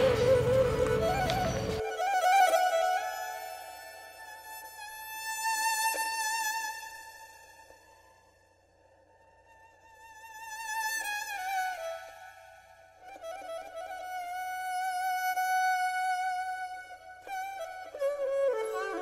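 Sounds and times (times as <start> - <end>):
slow solo violin melody: 0.0 - 8.2, 9.4 - 19.0.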